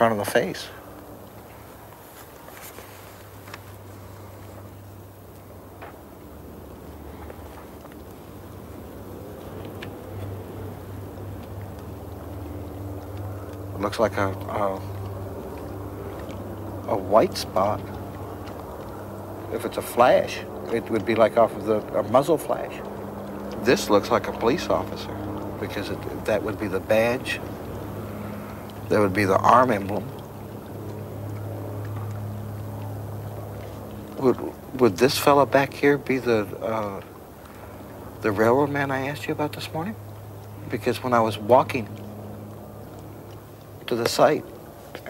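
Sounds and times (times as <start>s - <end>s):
low hum: 0.0s - 45.0s.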